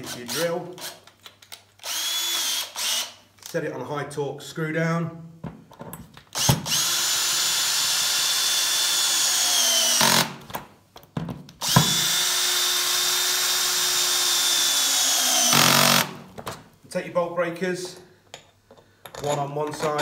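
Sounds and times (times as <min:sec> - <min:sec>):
cordless drill motor whine: 0:01.8 - 0:03.1, 0:06.4 - 0:10.2, 0:11.6 - 0:16.1.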